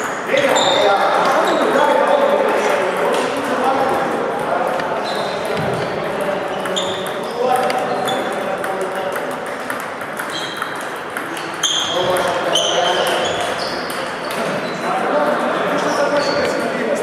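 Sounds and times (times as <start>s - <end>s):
table tennis balls clicking: 0.0s - 14.6s.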